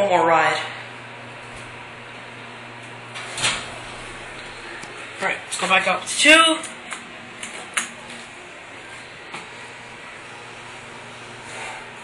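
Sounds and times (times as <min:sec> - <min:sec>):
steady low hum: 0:00.0 - 0:12.0
elevator doors sliding open: 0:03.1 - 0:04.2.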